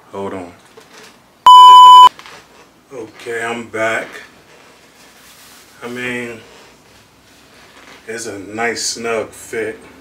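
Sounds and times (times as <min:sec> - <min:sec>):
electronic beep: 0:01.5 - 0:02.1.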